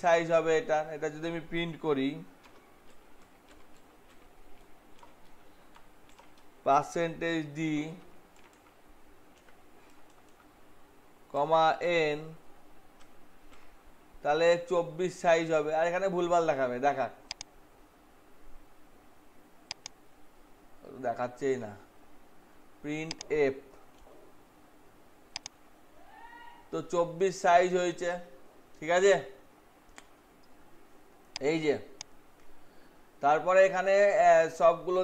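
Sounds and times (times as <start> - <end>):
man talking: 0.0 - 2.3, 6.7 - 8.0, 11.4 - 12.4, 22.8 - 23.7, 26.8 - 29.3, 31.4 - 32.0, 33.2 - 35.0
computer clicks: 2.4 - 6.5, 8.3 - 10.5, 17.3 - 17.5, 19.7 - 20.0, 23.0 - 23.3, 25.3 - 25.6, 29.9 - 30.6.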